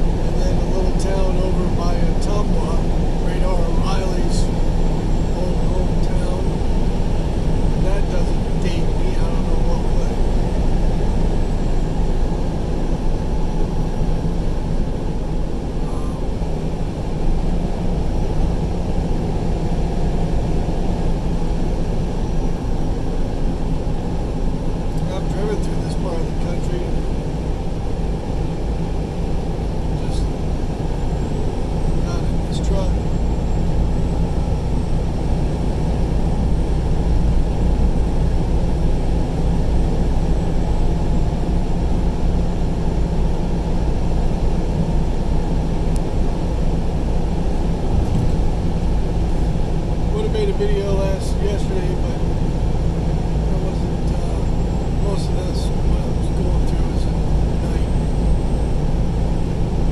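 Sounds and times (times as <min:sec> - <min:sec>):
road and engine noise in car cabin: 0:00.0 - 0:59.9.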